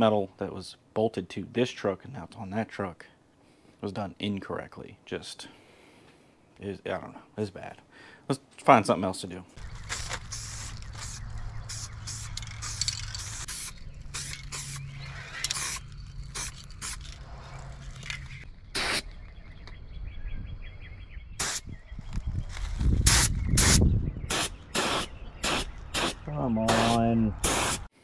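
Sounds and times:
paint spraying in hissing bursts: 0:09.9 - 0:14.9, 0:15.6 - 0:17.0, 0:18.8 - 0:19.1, 0:21.4 - 0:21.6, 0:23.0 - 0:27.9.

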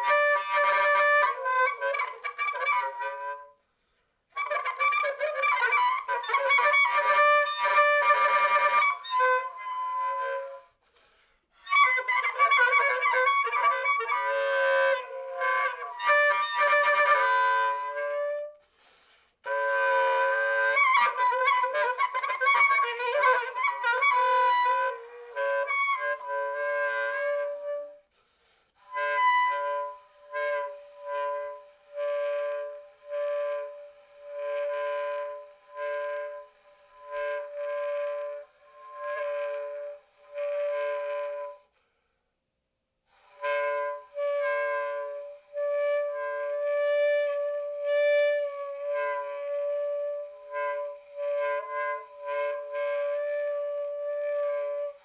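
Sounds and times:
soprano saxophone solo: 0:00.0 - 0:03.6, 0:19.4 - 0:28.1, 0:28.8 - 0:41.7, 0:43.2 - 0:55.0.

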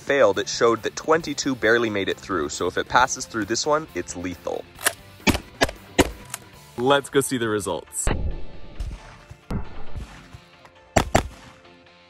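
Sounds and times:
background music: 0:00.0 - 0:12.0
shotgun bangs: 0:11.0 - 0:11.6.

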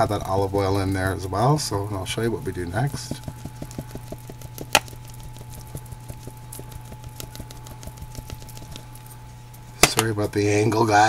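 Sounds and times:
spice sprinkling ticks and patter: 0:00.0 - 0:10.9
steady low hum: 0:00.0 - 0:11.0.

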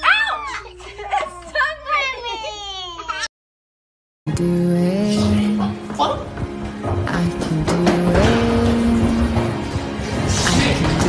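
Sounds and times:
background music: 0:04.3 - 0:11.0.

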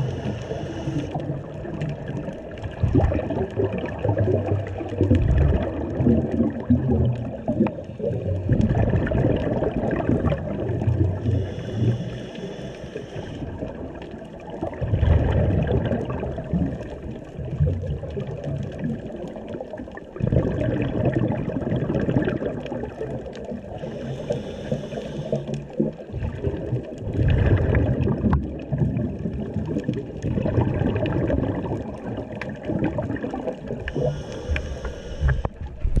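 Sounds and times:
hissing regulator breath: 0:00.0 - 0:01.2, 0:11.2 - 0:13.5, 0:23.7 - 0:25.7, 0:33.9 - 0:35.6
exhaled bubbles rumbling underwater: 0:00.0 - 0:36.0
water moving past camera: 0:00.0 - 0:36.0.

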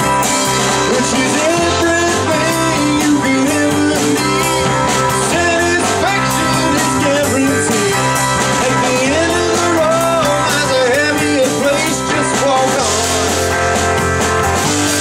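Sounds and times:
gliding electric guitar lead line: 0:00.0 - 0:15.0
rock band playing: 0:00.0 - 0:15.0.

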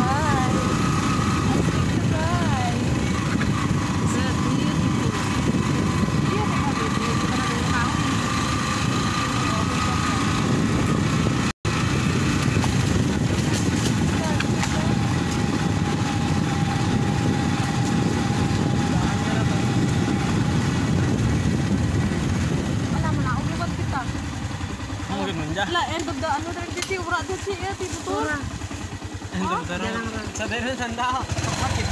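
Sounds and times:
wind on microphone: 0:00.0 - 0:25.2
motorcycle engine running: 0:00.0 - 0:31.9.

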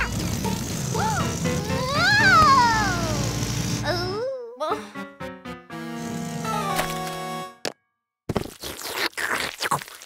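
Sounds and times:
light children's music: 0:00.0 - 0:07.6.

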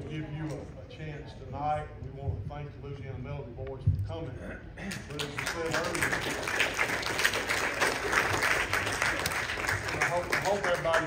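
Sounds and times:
congregation applauding: 0:05.1 - 0:11.0.

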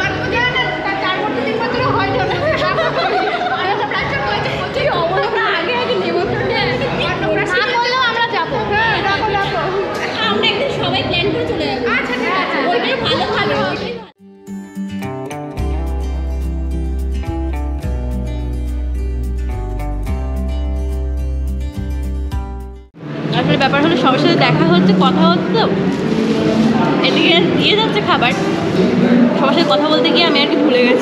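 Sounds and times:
overlapping conversation: 0:00.0 - 0:14.2, 0:23.2 - 0:31.0.

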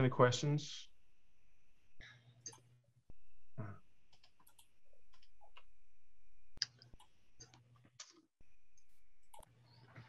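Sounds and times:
low hum: 0:00.8 - 0:07.7.

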